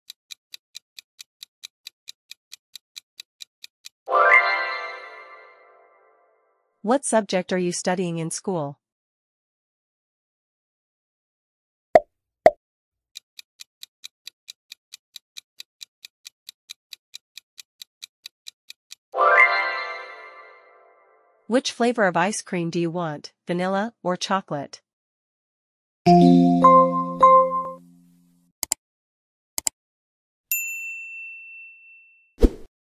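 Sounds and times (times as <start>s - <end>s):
countdown timer ticking: 26.1s - 28.0s
notification bell ding: 26.1s - 28.0s.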